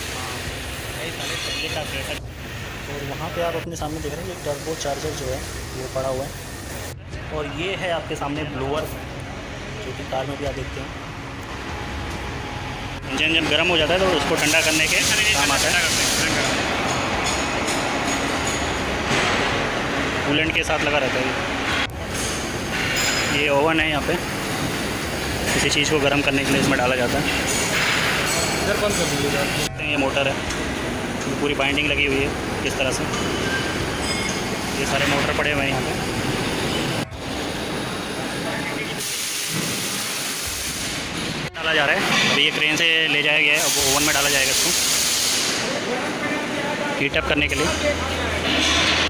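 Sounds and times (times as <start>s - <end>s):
rushing hiss of workshop noise: 0.0s - 7.0s, 11.8s - 46.8s.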